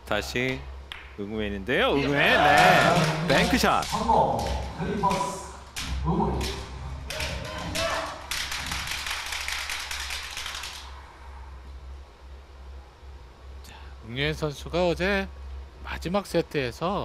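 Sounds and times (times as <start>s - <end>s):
audience applause: 2.2s - 5.4s, 6.4s - 10.9s.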